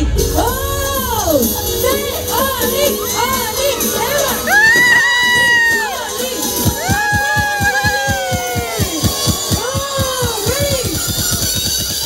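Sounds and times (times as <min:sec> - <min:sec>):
music with bass beat: 0:00.0 - 0:12.0
children shouting and cheering: 0:00.6 - 0:12.0
long drawn-out yells: 0:03.2 - 0:10.5.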